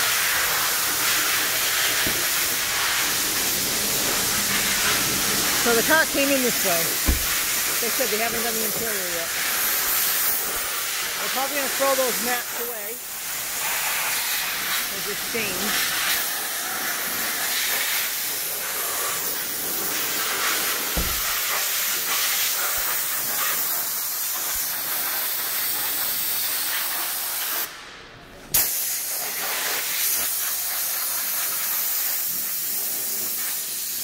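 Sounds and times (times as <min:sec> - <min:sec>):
steady loud hiss: 0:00.0 - 0:34.0
dull thump: 0:07.0 - 0:07.7, 0:20.9 - 0:21.5.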